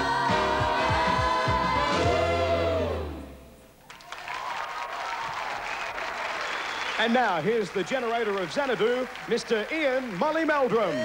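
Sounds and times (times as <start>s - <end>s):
music: 0.0s - 3.7s
audience applause: 3.8s - 11.0s.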